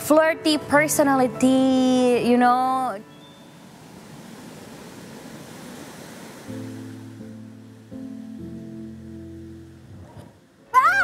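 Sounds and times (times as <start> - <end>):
background music with low chords: 0.0 - 3.5, 6.5 - 10.8
soft even rushing noise: 3.3 - 8.6.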